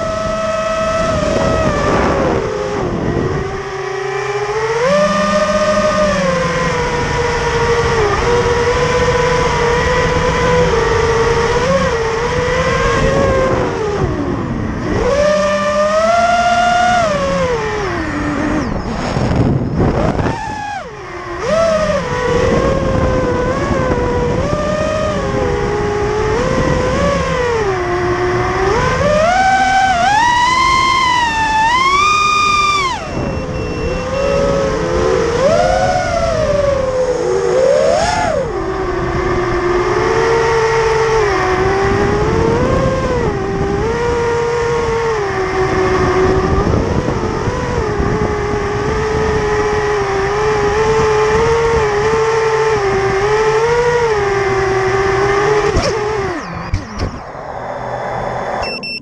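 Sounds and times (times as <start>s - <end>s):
quadcopter motor whine: 0.0s - 59.0s.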